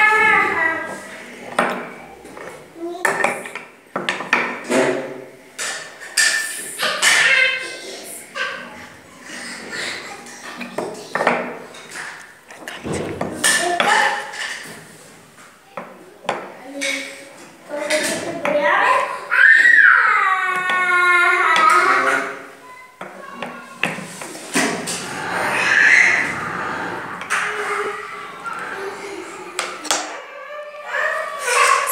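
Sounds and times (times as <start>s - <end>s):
children's voices: 0.0s - 3.8s, 6.4s - 31.9s.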